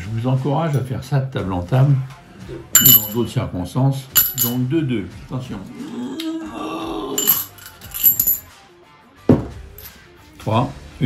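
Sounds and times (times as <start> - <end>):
coin clinking into glass: 2.8 - 3.3, 4.2 - 4.6, 7.2 - 8.5
knock on table: 9.3 - 9.6.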